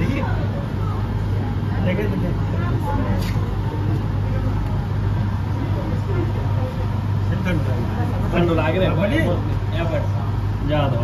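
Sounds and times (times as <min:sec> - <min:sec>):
low hum of city noise: 0:00.0 - 0:11.0.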